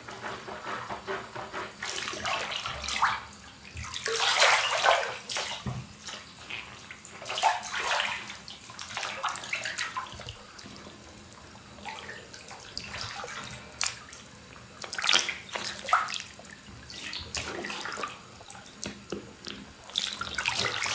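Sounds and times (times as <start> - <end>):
bathwater sloshing and splashing: 0.0 - 20.9.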